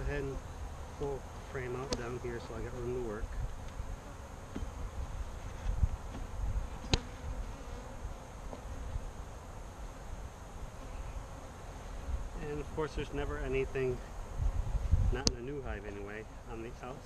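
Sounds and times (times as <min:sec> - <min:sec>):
honeybees buzzing: 0:00.0 - 0:17.0.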